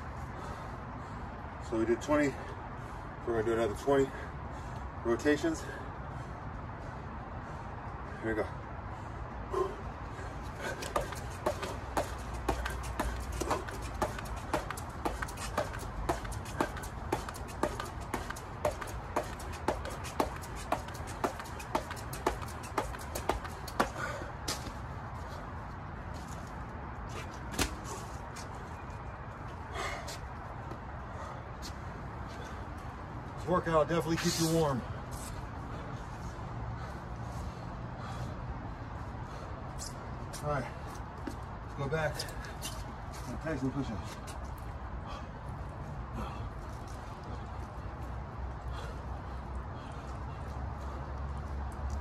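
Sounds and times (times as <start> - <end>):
jump rope slapping rubber mat: 10.6 - 24.8.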